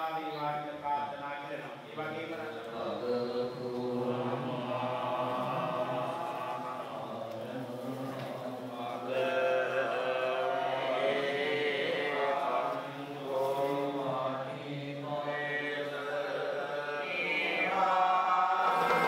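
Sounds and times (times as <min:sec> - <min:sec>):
monks chanting: 0:01.5 - 0:19.0.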